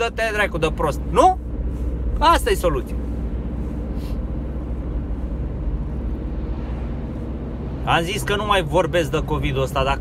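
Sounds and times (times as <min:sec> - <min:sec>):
engine and road noise rumble: 0:00.0 - 0:10.0.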